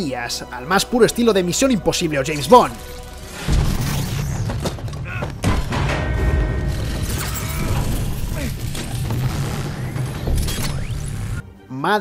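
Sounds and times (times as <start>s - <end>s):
low music score: 0.0s - 3.8s
sharp hits: 3.3s - 11.4s
men grunting: 7.2s - 8.6s.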